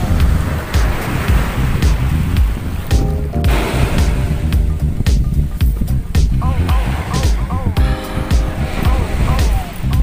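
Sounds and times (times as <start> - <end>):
background music with heavy bass beat: 0.0 - 10.0.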